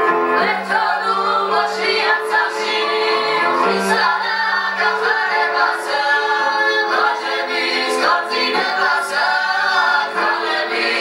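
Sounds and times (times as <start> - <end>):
voices singing in harmony: 0.4 - 11.0.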